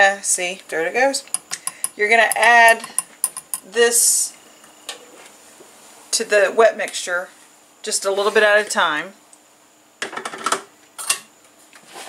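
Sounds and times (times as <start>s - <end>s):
glass bowl knocking plastic bowl: 1.3s - 3.7s.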